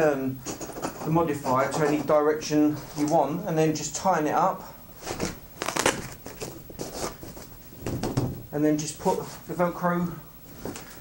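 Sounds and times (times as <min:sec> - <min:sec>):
nylon fabric rustling: 0:05.0 - 0:08.4.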